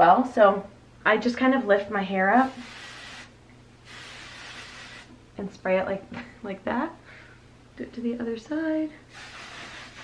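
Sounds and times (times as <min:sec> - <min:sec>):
aerosol spray hissing: 0:02.4 - 0:03.3, 0:03.9 - 0:05.1, 0:09.1 - 0:10.0.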